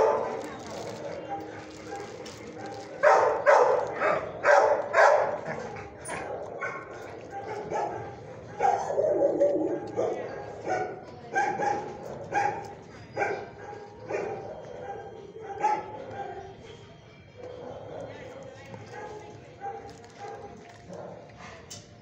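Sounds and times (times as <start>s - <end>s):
dog barking and yipping: 0.0s - 16.4s.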